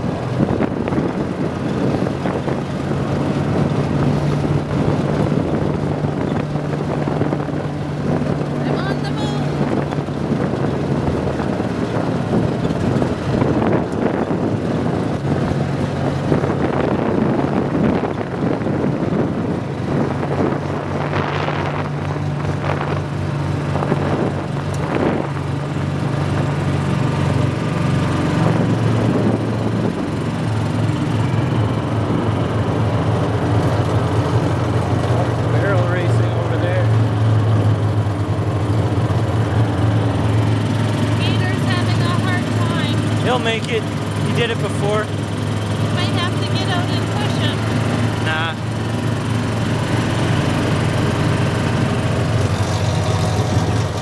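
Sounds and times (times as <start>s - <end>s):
utility vehicle engine running: 0.0s - 54.0s.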